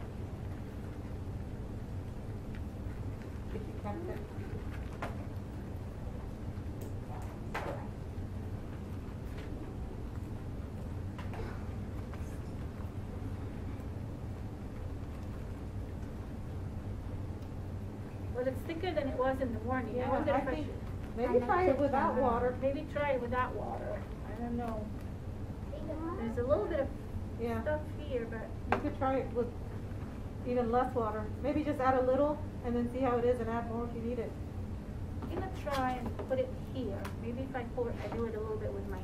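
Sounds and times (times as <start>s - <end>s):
low background hum: 0.0s - 39.0s
low rumble of room noise: 0.0s - 39.0s.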